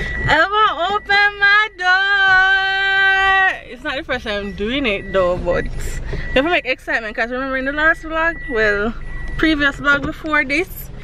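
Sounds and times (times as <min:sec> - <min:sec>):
woman singing: 0:00.2 - 0:05.7.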